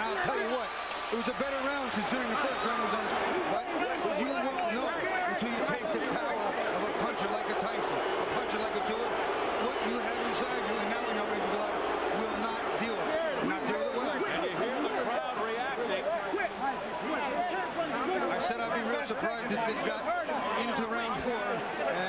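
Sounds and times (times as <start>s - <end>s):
crowd shouting angrily: 0.0s - 22.0s.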